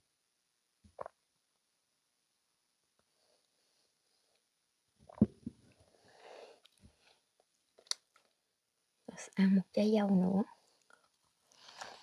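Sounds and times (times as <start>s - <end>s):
person swallowing drink: 0.8s - 1.2s, 5.0s - 5.7s.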